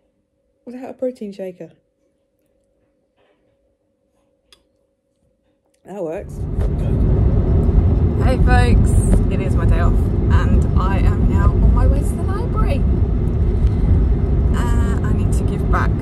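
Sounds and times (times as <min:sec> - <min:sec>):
woman talking: 0:00.7 - 0:01.7, 0:05.9 - 0:06.4, 0:08.2 - 0:12.9, 0:14.5 - 0:16.0
road and engine rumble: 0:06.2 - 0:16.0.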